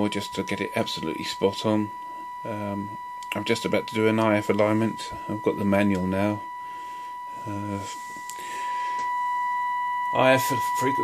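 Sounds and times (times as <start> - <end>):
steady test tone: 0.0 - 11.0.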